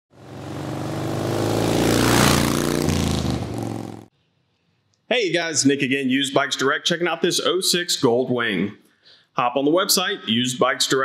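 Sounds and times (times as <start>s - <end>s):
motorcycle engine revving: 0.1s - 4.1s.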